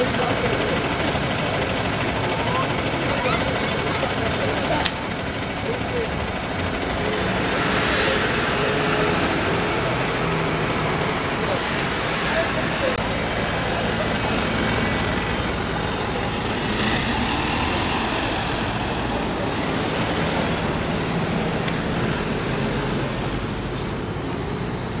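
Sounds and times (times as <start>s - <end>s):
diesel bus driving past: 0.0s - 25.0s.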